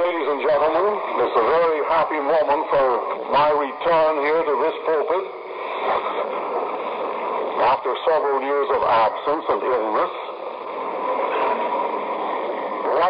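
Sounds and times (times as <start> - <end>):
man speaking: 0.0 - 5.3, 7.6 - 10.2.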